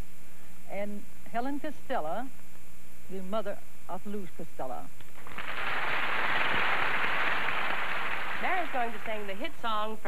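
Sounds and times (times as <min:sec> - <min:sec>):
audience applauding: 0:05.2 - 0:09.5.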